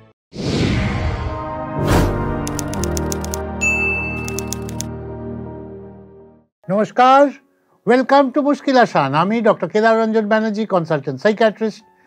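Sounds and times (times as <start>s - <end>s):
sustained background music: 1.3s - 8.3s
typewriter key clicks: 2.5s - 3.4s, 4.2s - 4.9s
typewriter bell ding: 2.5s - 4.8s.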